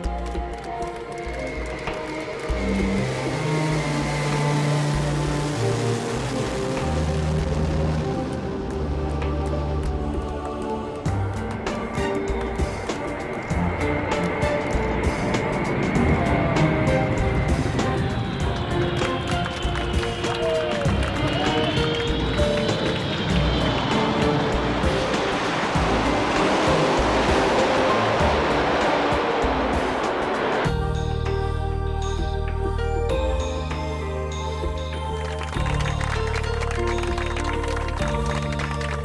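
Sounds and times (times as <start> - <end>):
music playing: 0.0 - 39.0
jet engines roaring: 0.6 - 31.0.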